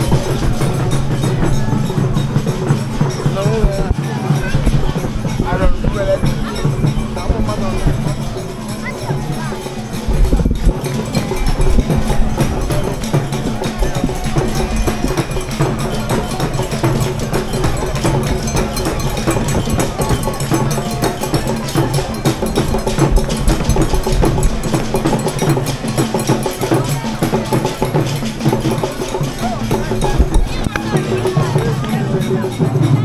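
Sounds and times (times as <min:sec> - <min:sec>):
percussion-driven music: 0:00.0 - 0:33.0.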